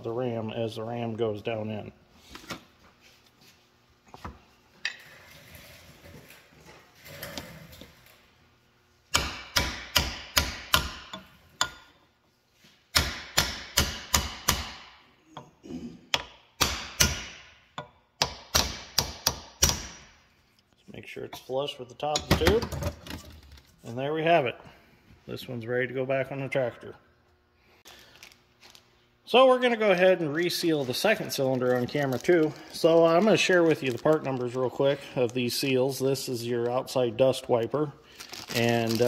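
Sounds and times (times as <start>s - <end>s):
hammer tapping metal: 9.1s - 12.0s.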